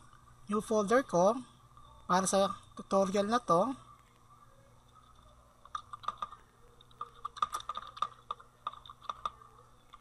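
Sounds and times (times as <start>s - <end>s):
computer keyboard typing: 4.9s - 10.0s.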